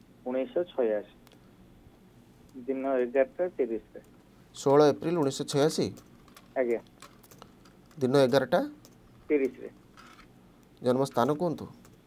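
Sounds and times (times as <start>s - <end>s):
keyboard typing clicks: 5.8s - 9.6s.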